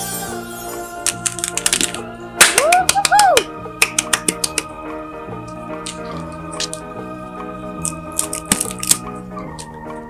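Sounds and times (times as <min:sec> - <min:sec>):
background music: 0:00.0 - 0:10.0
paper crinkling and clicking: 0:01.1 - 0:03.0, 0:05.8 - 0:06.8, 0:07.8 - 0:09.7.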